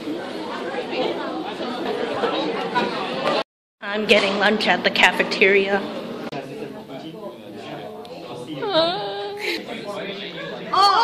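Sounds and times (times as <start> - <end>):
chatter of many voices: 0.0 - 3.4, 5.3 - 11.0.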